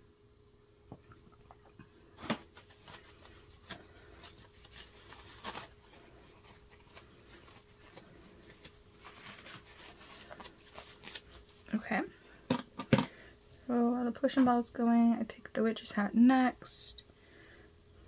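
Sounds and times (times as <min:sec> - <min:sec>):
paper towel crinkling: 0:02.1 - 0:12.3.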